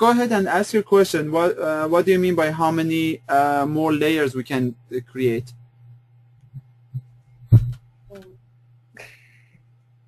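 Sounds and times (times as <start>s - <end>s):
low electrical hum: 0.0s - 10.0s
soft thumps: 6.5s - 8.3s.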